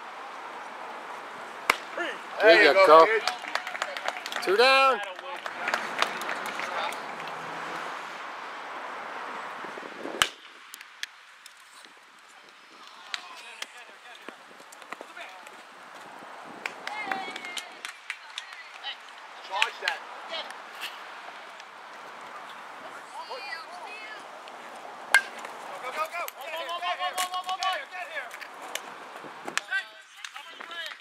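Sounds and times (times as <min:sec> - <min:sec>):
spectators chattering: 0:00.0 - 0:07.7, 0:16.5 - 0:31.0
baseball bat crack: 0:01.6 - 0:04.5, 0:10.0 - 0:11.2, 0:24.4 - 0:26.5, 0:27.1 - 0:28.9.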